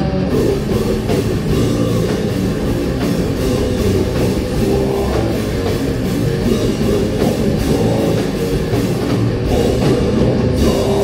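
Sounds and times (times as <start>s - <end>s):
bass guitar: 0.0s - 11.0s
distorted electric guitar: 0.0s - 11.0s
drum kit: 0.0s - 11.0s.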